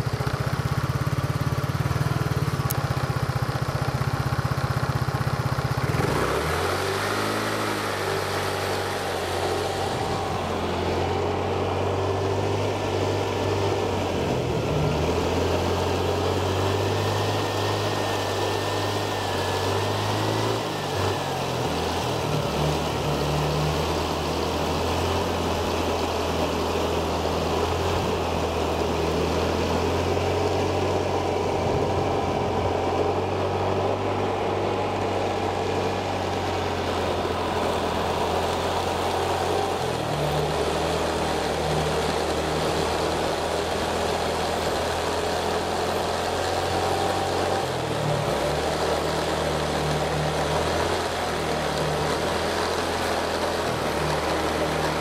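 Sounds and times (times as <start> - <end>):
engine running: 0.0 - 55.0.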